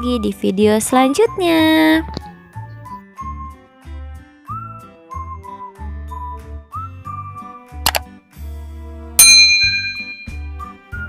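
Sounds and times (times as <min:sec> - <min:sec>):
whistled children's music: 0:00.0 - 0:07.8, 0:10.3 - 0:11.0
sharp click: 0:07.9 - 0:08.1
bell ding: 0:09.2 - 0:10.6.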